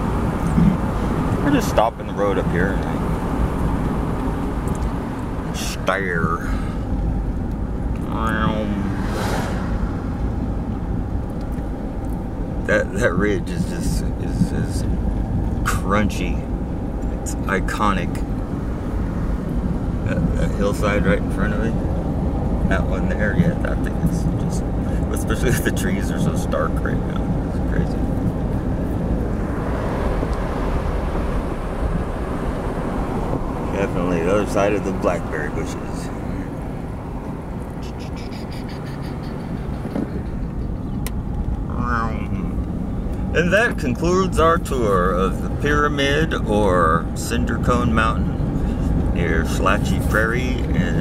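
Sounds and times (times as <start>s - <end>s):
car engine and tyre noise: 0.0s - 51.0s.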